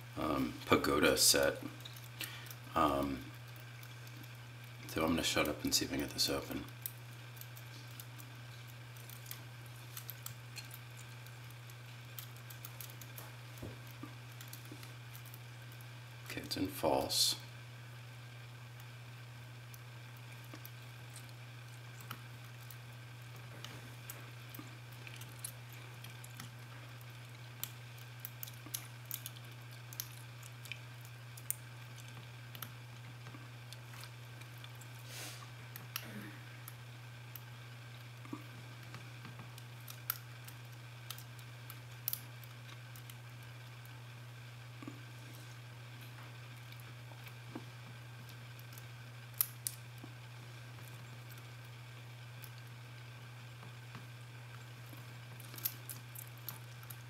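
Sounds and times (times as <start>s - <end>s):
low electrical hum: 0.0s - 57.0s.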